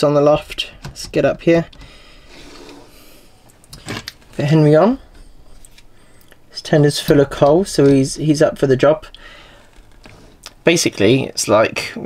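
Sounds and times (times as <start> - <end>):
person breathing softly: 1.8 - 3.5, 5.1 - 6.5, 9.1 - 10.4.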